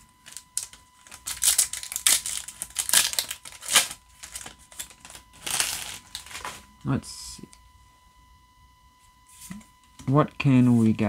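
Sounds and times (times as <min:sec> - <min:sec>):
foil wrapper crinkling: 0:00.2 - 0:06.6.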